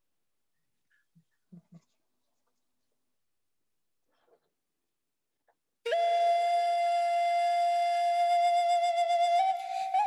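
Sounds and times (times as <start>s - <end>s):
flute holding long note: 5.9s - 10.0s.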